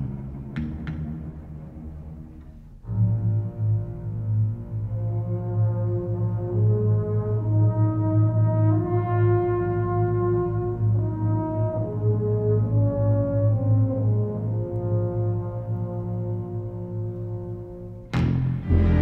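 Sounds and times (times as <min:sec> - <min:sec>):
sustained orchestral brass notes: 0:00.0 - 0:19.0
steady low drone: 0:10.7 - 0:19.0.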